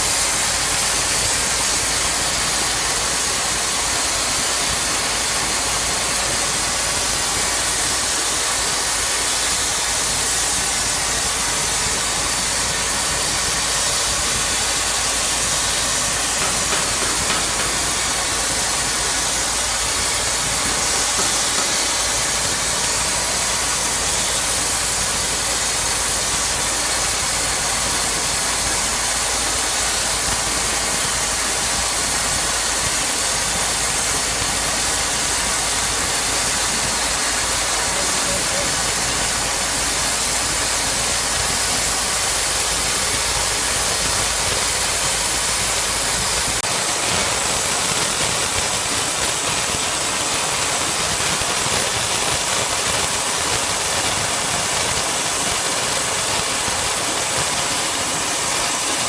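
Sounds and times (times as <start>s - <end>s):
cutting torch hissing: 0.0s - 59.0s.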